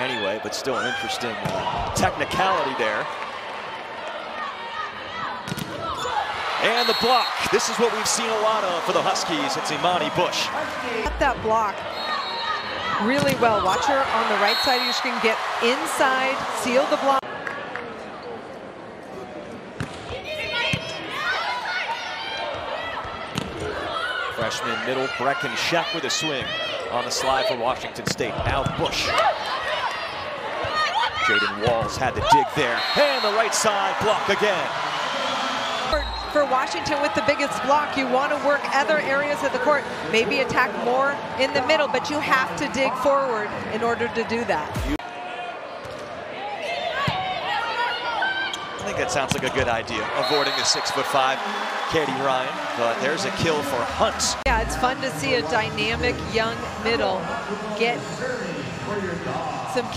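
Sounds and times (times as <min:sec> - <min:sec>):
large arena crowd: 0:00.0 - 0:59.9.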